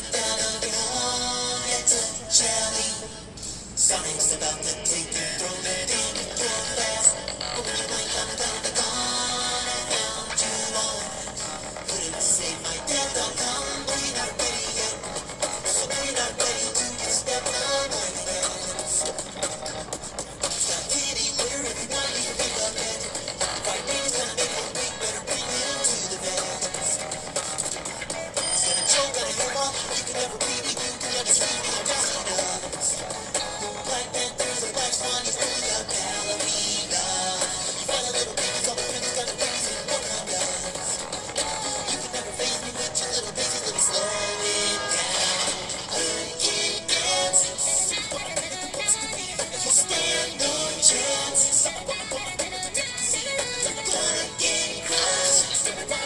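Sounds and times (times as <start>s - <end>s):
backing beat: 0.0s - 56.0s
vocal beatboxing: 0.0s - 56.0s.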